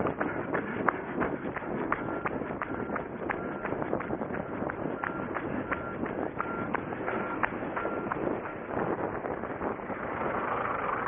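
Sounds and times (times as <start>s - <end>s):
running footsteps on gravel: 0.0s - 9.8s.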